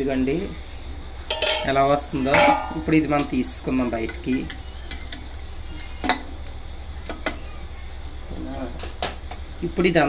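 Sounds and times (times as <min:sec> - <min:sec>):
low hum: 0:00.7 - 0:07.2
metal tongs clinking on bowl: 0:01.3 - 0:03.4.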